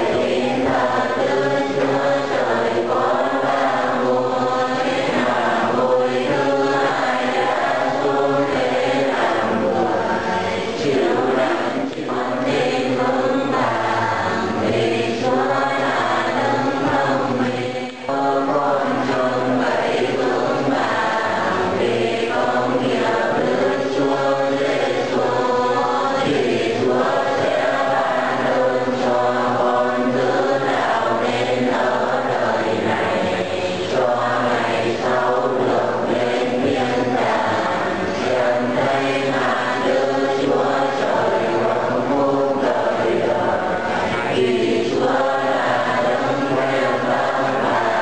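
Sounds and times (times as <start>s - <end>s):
crowd chanting in unison: 0.0s - 48.0s.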